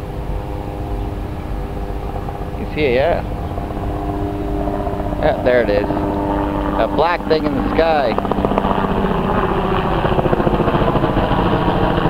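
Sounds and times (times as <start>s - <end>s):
helicopter rotor chopping: 0.0s - 12.0s.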